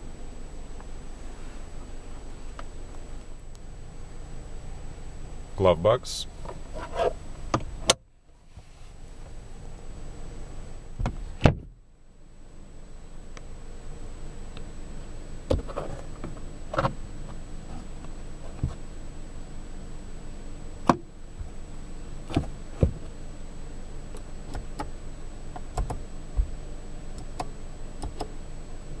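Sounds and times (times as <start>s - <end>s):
low steady cabin background: 0.0s - 29.0s.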